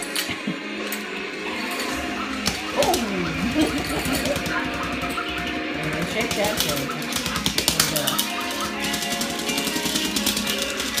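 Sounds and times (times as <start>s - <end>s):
fast rattle of clicks: 3.5s - 11.0s.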